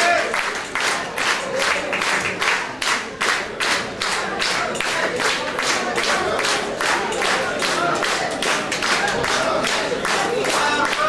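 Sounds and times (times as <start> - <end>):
audience clapping in unison: 0.0 - 11.0.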